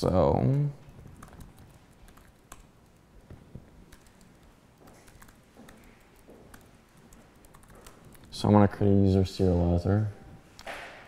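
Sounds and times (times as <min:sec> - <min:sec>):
computer keyboard keystrokes: 0:01.0 - 0:03.0, 0:03.9 - 0:08.4.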